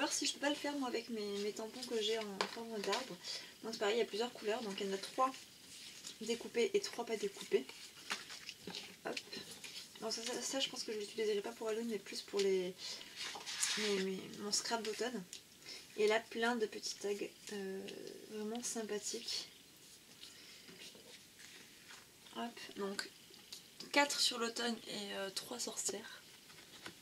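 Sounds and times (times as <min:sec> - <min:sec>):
paper cut-outs rustling: 0:13.2 - 0:15.1.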